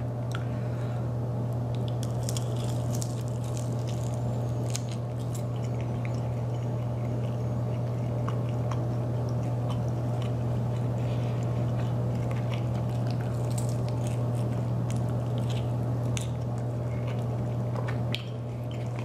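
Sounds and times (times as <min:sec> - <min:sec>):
steady low hum: 0:00.0 - 0:19.0
chewing and biting chicken wing: 0:01.7 - 0:19.0.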